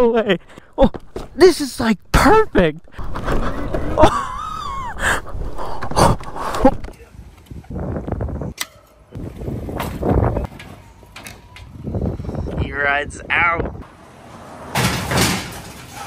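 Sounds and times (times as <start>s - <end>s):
dirt bike being moved about: 2.9s - 4.4s
tyre rolling noise: 2.9s - 6.9s.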